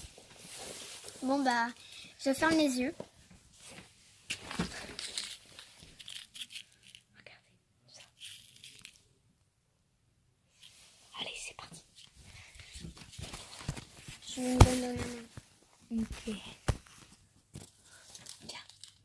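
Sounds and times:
plastic sweets packet crinkling: 4.8s - 7.1s, 8.0s - 9.0s, 17.9s - 19.0s.

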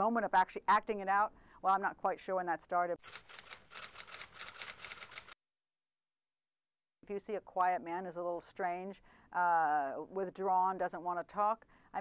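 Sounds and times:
rapid sharp clicks: 3.0s - 5.4s.

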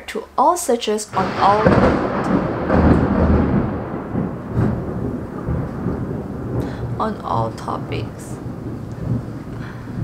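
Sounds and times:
rain: 1.1s - 10.0s
rolling thunder rumble: 1.1s - 10.0s.

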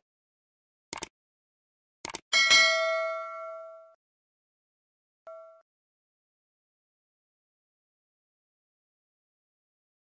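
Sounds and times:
quick clicks: 0.9s - 1.1s, 2.0s - 2.2s
bright bell ding: 2.4s - 4.0s, 5.3s - 5.6s.

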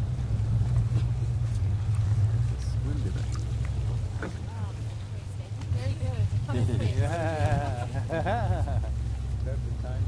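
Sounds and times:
boat engine hum: 0.0s - 10.0s.

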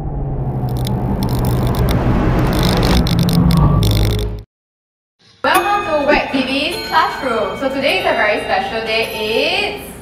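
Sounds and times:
dense rumbling noise with low hum: 0.0s - 4.4s.

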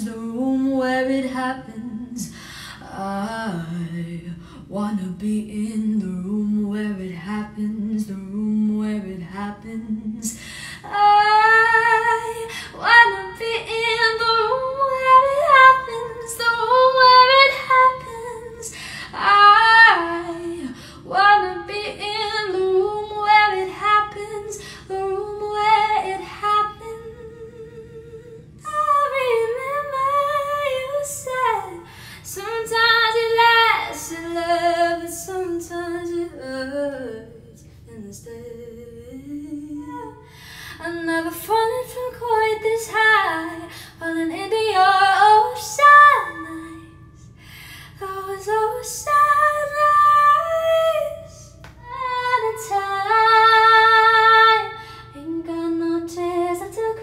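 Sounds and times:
woman singing: 0.0s - 57.0s.

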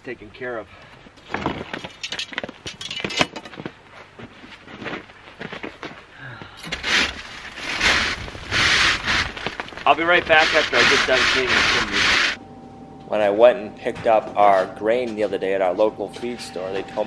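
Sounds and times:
wire brush scraping metal pipe: 6.8s - 12.4s.

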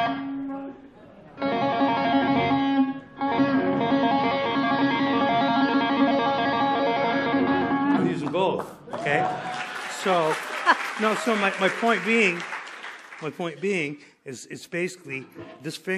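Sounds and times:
electric guitar tapping: 1.4s - 8.6s.

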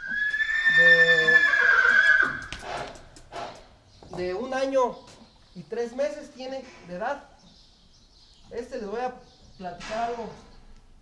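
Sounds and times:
horse neighing: 0.0s - 3.0s.

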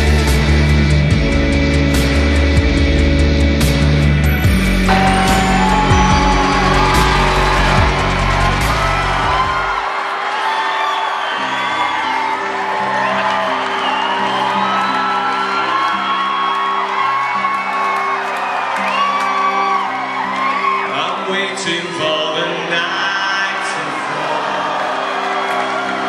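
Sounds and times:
bass-heavy electronic music: 0.0s - 9.8s
synthesizer chords: 2.7s - 10.0s
crowd whooping and cheering: 4.9s - 21.8s, 22.8s - 26.0s.

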